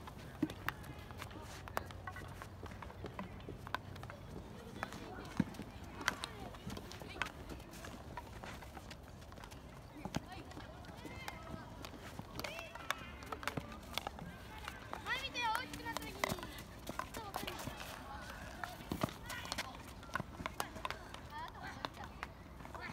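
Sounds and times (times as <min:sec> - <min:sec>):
running footsteps: 0:00.0 - 0:22.0
hockey sticks striking balls: 0:00.0 - 0:22.9
players' voices: 0:00.0 - 0:22.9.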